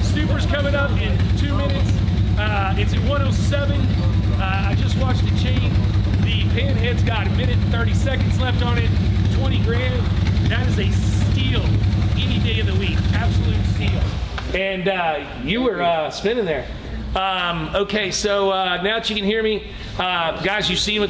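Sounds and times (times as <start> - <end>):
steady low rumble: 0.0 - 15.5
men talking indistinctly: 0.0 - 21.0.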